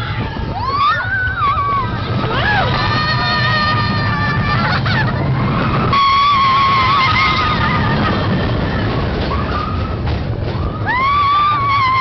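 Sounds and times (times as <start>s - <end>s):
roller coaster cars rattling: 0.0s - 12.0s.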